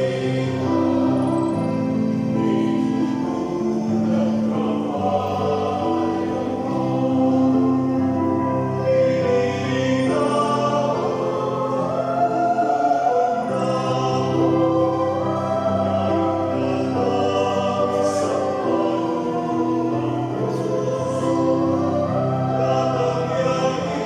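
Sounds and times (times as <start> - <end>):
mixed choir singing: 0.0 - 24.0.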